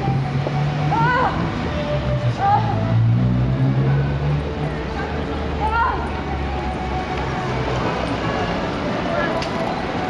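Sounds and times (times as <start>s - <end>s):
street noise: 0.0s - 10.0s
vehicle engine humming: 0.0s - 10.0s.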